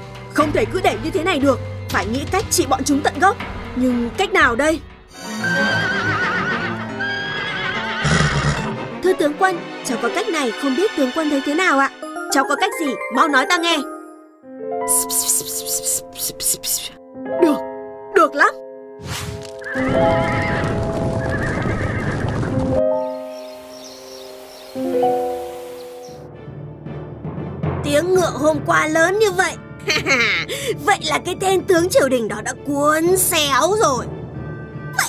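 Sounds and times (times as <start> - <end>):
background music: 0.0 - 35.0
horses whinnying: 5.2 - 8.8, 19.6 - 22.6
horses galloping: 19.7 - 22.8.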